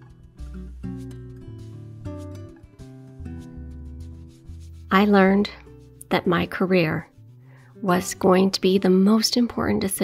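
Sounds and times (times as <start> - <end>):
soft acoustic guitar music: 0.0 - 10.0
woman's voice: 4.9 - 7.1, 7.8 - 10.0.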